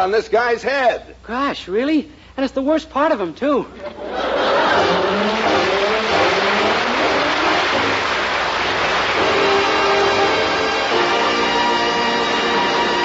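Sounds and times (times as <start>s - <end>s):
audience laughing: 3.8s - 9.2s
audience clapping: 4.3s - 13.0s
orchestra music: 4.6s - 13.0s.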